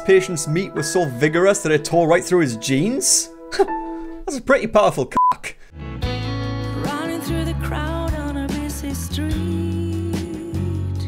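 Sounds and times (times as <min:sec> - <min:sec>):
censor bleep: 0:05.2 - 0:05.4
background music with bass notes: 0:05.8 - 0:11.0.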